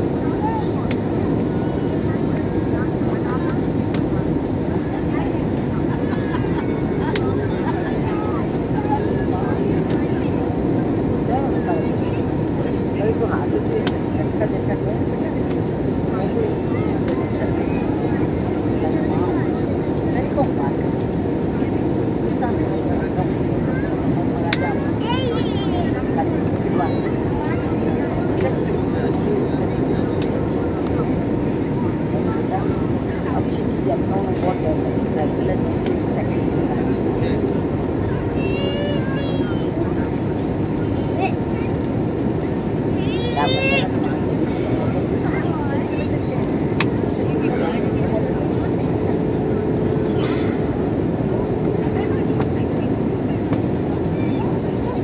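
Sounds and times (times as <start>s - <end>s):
jet engine and airflow rush: 0.0s - 55.0s
murmur of passengers' voices: 0.0s - 55.0s.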